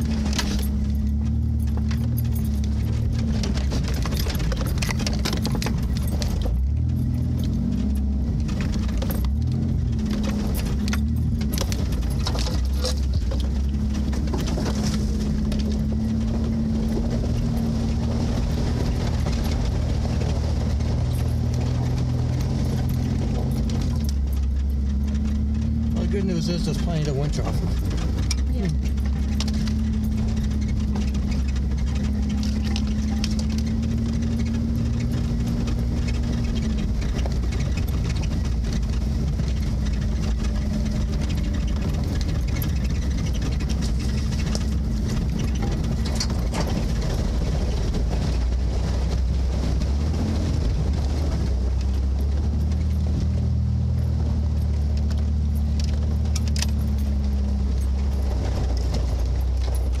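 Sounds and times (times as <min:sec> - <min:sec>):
rattles and clicks: 0:00.0 - 1:00.0
vehicle engine running at low speed: 0:00.0 - 1:00.0.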